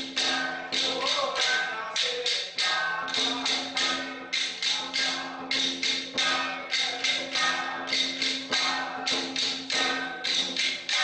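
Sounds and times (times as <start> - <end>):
sharp ringing percussion strikes: 0.0 - 11.0.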